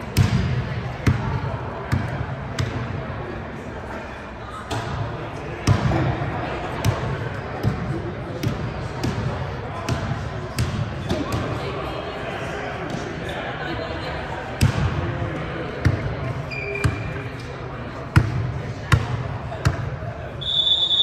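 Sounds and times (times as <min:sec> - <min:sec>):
murmur of voices: 0:00.0 - 0:21.0.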